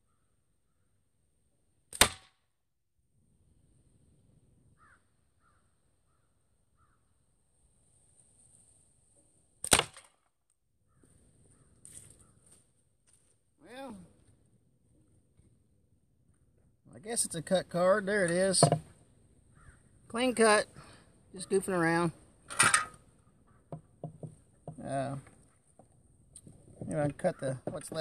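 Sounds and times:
slingshot shot crack: 0:01.9 - 0:02.4, 0:09.6 - 0:10.1
soft knocks: 0:18.6 - 0:18.9, 0:23.7 - 0:24.8.

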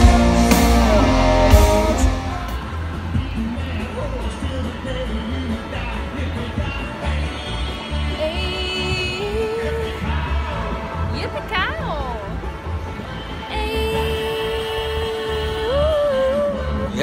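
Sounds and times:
live rock band chord: 0:00.0 - 0:04.4.

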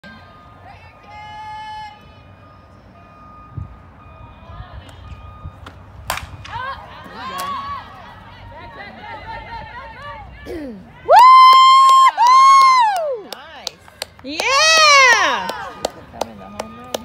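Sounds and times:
bat hitting ball crack: 0:06.0 - 0:06.6
spectators shouting and cheering: 0:06.5 - 0:13.5, 0:14.3 - 0:16.0.

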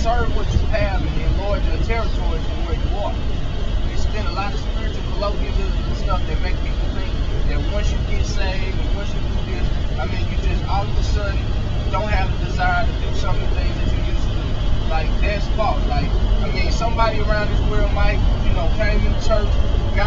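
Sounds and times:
man speaking: 0:00.0 - 0:03.2, 0:03.9 - 0:20.0
car road and engine rumble: 0:00.0 - 0:20.0.

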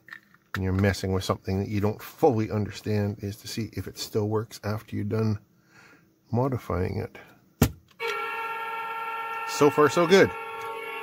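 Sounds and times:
goal light horn blast: 0:08.0 - 0:11.0.

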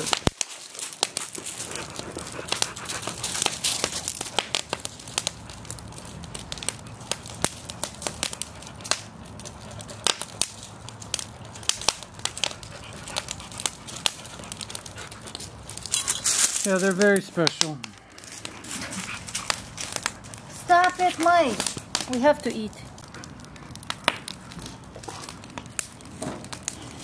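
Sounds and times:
sharp popping of fire: 0:00.0 - 0:27.0
wood fire crackling: 0:00.0 - 0:27.0.

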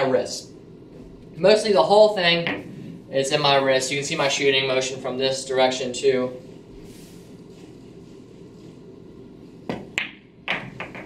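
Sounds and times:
ball dropping into pocket: 0:09.7 - 0:11.0
cue striking cue ball: 0:09.7 - 0:11.0
pool balls clacking: 0:09.7 - 0:11.0.

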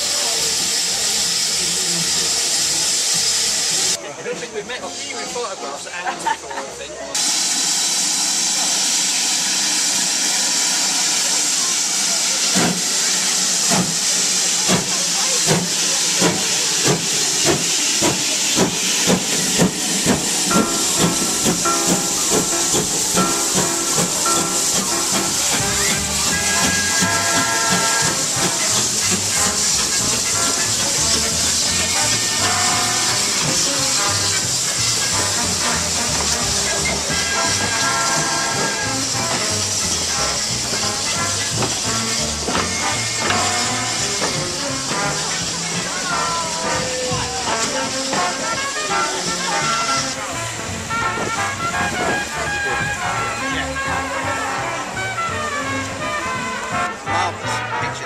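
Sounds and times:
steam hissing: 0:00.0 - 0:04.0, 0:07.2 - 0:57.8
steam locomotive exhaust chuffs: 0:00.0 - 0:04.0, 0:07.2 - 0:57.8.

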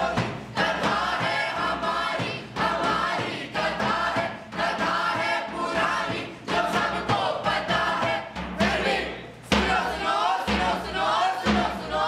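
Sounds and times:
group singing in unison: 0:00.0 - 0:12.0.

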